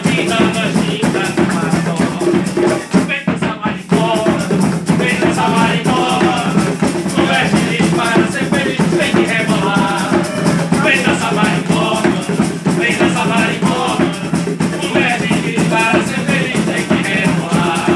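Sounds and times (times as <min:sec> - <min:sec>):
bongos: 0:00.0 - 0:17.9.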